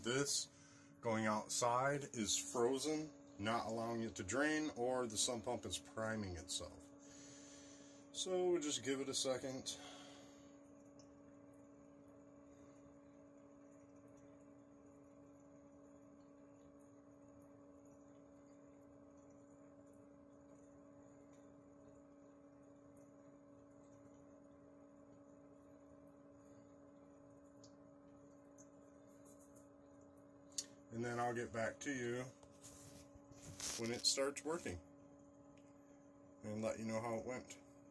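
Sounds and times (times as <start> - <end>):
faint steady hum: 0.0 - 37.9.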